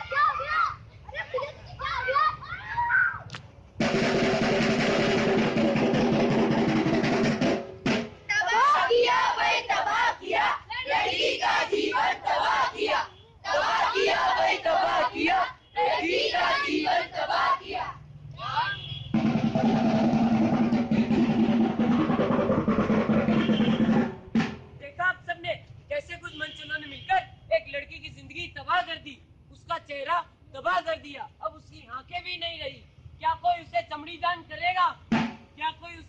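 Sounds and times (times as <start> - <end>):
fast drum roll: 3.8 - 8.3, 19.1 - 24.8.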